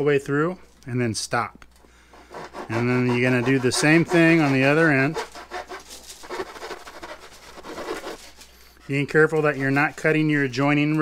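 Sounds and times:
fine saw cutting wood: 2.1 - 10.6.

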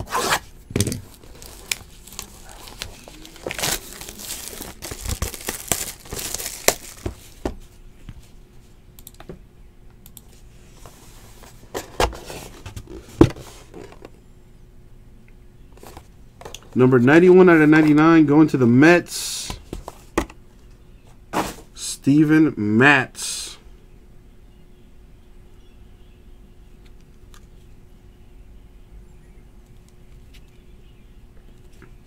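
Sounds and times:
plastic wrap tearing and crinkling: 1.0 - 7.3.

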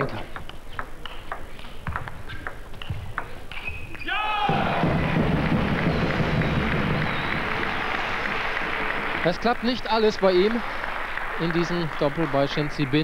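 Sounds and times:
table tennis ball clicking: 0.3 - 3.7
crowd applause: 4.4 - 13.0.

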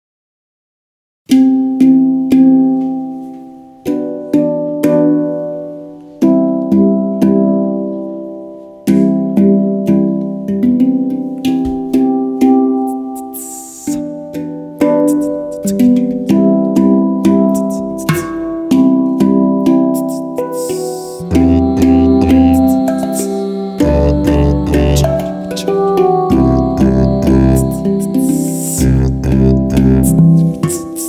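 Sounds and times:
handpan melody: 1.3 - 31.0.

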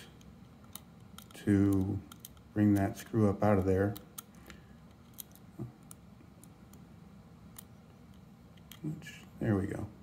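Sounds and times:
screwdriver clicks and ticks: 0.2 - 2.9.

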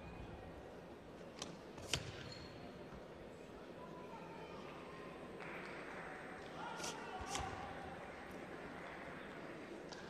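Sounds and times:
low hall background: 0.0 - 10.0.

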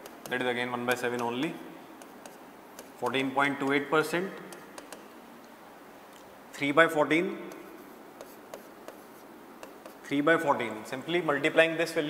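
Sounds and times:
pen writing on a board: 2.0 - 3.0, 4.4 - 5.1, 7.5 - 10.1.

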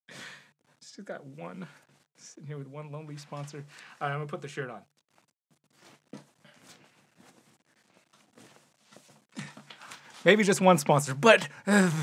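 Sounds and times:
cloth rustling: 5.1 - 10.3.

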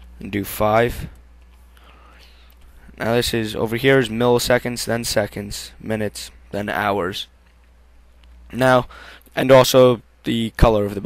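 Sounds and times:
electrical hum and hiss: 0.0 - 11.0.

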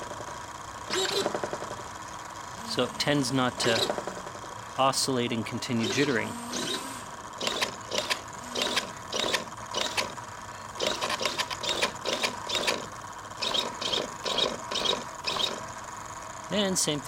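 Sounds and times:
servos whirring: 0.0 - 16.2.

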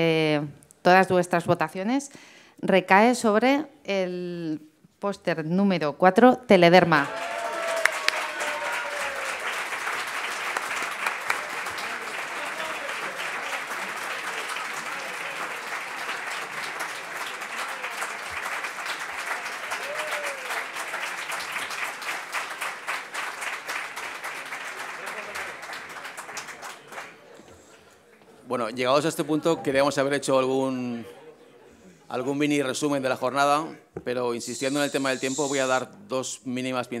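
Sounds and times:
audience applauding: 7.0 - 28.2.

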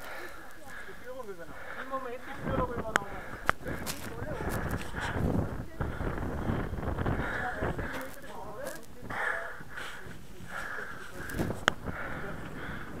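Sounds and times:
distant indistinct voices: 0.0 - 13.0.

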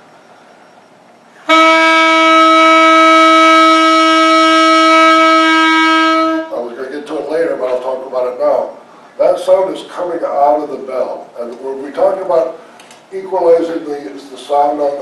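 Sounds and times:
alto saxophone long note: 1.4 - 6.7.

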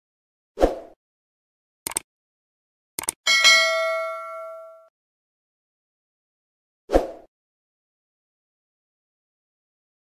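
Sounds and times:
computer mouse clicks: 3.0 - 3.2
notification bell ding: 3.3 - 4.9.

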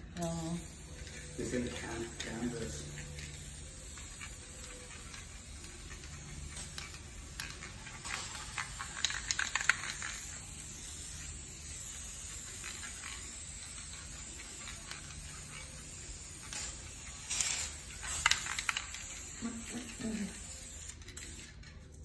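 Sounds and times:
spray paint can hissing: 0.2 - 22.0.

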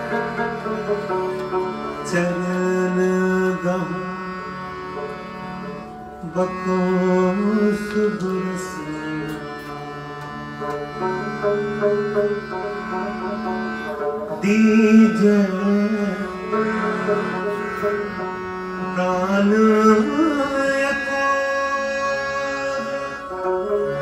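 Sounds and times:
bowed strings: 0.0 - 24.0
harmonium: 0.0 - 24.0
plucked strings: 0.0 - 24.0
man singing: 2.0 - 4.3, 6.2 - 9.5, 14.4 - 17.5, 18.8 - 24.0.

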